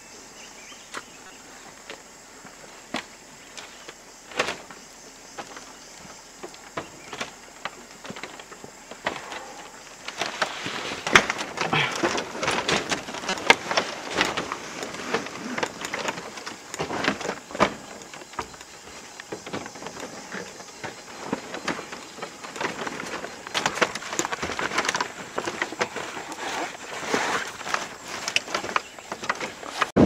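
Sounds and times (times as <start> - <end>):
rustling: 1.5 - 30.0
wood creaking: 2.9 - 30.0.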